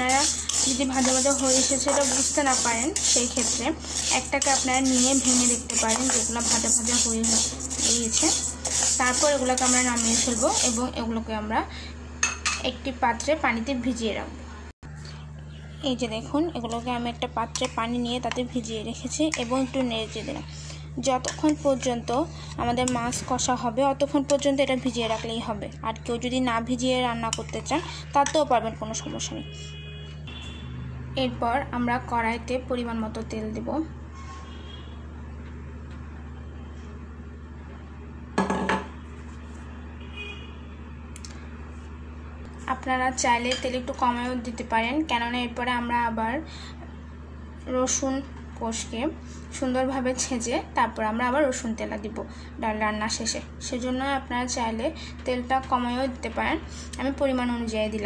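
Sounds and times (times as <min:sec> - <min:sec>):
spatula scraping metal pan: 0:00.0 - 0:11.0
woman talking: 0:00.0 - 0:11.8, 0:12.6 - 0:14.7, 0:15.8 - 0:29.6, 0:31.2 - 0:34.0, 0:42.6 - 0:46.6, 0:47.7 - 0:58.0.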